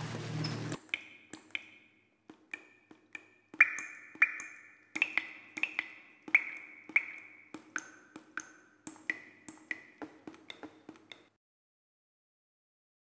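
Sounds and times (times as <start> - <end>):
bright pinging drip-like notes: 0.8 - 11.3.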